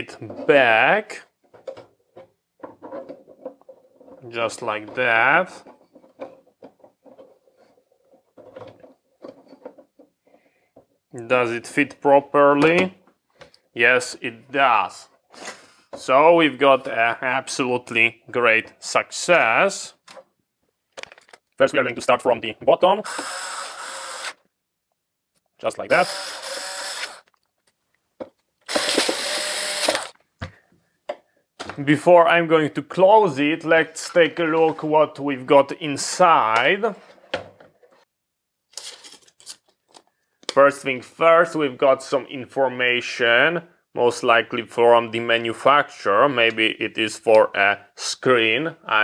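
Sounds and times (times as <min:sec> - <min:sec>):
electric screwdriver motor: 0:23.1 - 0:24.4, 0:26.0 - 0:27.3, 0:28.7 - 0:30.2.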